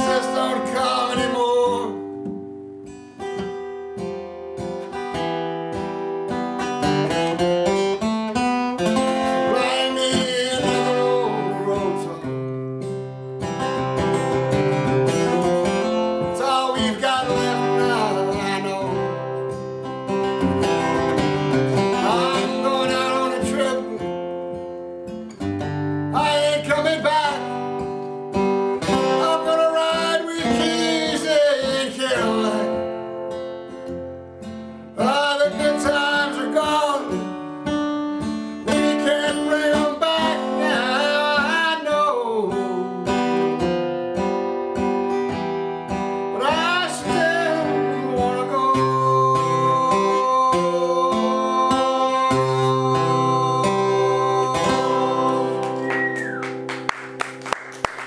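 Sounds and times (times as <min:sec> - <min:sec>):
man singing: 0:00.0 - 0:02.1, 0:08.8 - 0:12.5, 0:14.4 - 0:19.6, 0:20.6 - 0:24.4, 0:26.0 - 0:27.9, 0:28.8 - 0:33.0, 0:34.9 - 0:37.5, 0:38.6 - 0:43.8, 0:46.3 - 0:56.4
strummed acoustic guitar: 0:00.0 - 0:58.0.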